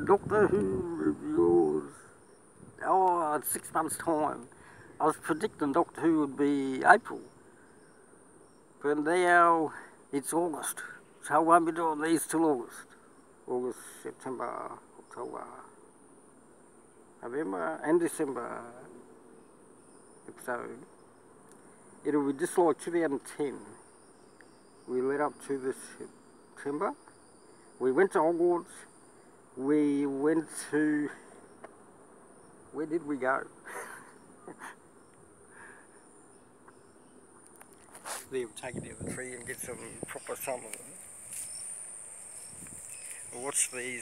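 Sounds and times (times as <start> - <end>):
high-pitched insect chirring: 0.0 - 44.0
brief rustle: 37.4 - 38.3.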